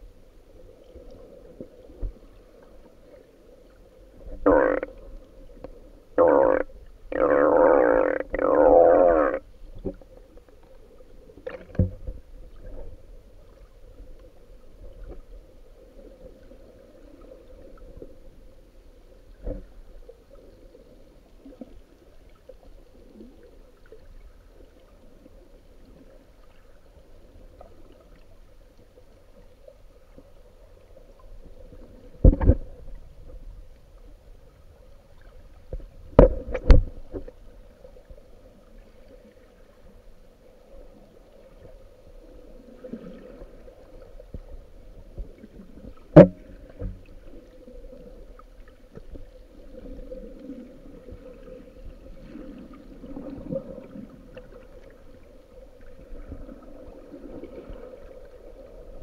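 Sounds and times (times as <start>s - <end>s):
muffled underwater rush: 0.0s - 59.0s.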